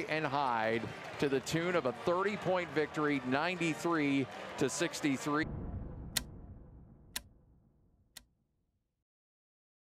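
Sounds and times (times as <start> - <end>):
low rumble: 5.4 - 8.2.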